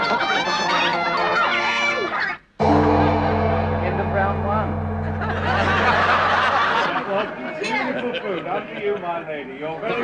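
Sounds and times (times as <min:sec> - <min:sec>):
audience chatter: 0:00.0 - 0:10.0
low sustained musical note: 0:02.6 - 0:06.6
studio audience laughter: 0:05.2 - 0:09.1.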